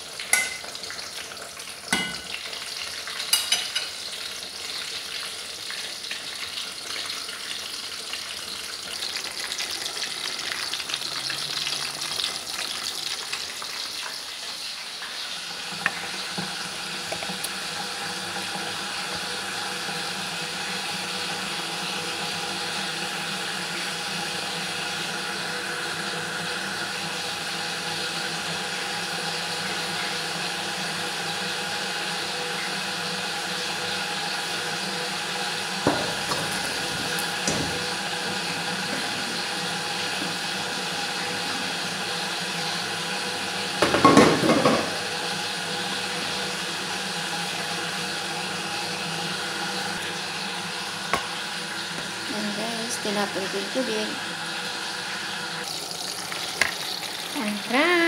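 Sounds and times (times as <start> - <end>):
metal pot knocking on colander: 0.3 - 0.6, 1.9 - 2.2.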